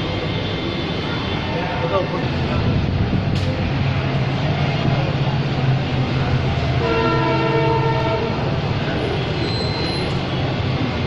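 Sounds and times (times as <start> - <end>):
horn sounding: 6.8 - 8.6.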